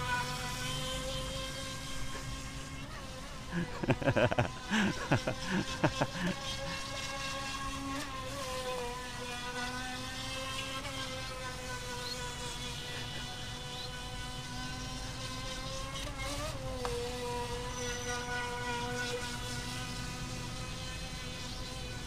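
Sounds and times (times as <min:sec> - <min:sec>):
electric motor high whine: 0:00.0 - 0:22.0.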